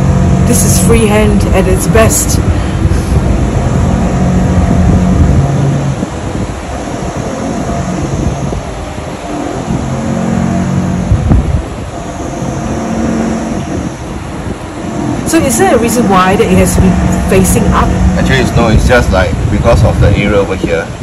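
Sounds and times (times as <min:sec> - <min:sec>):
low hum: 0:00.0 - 0:21.0
low mechanical rumble: 0:00.0 - 0:21.0.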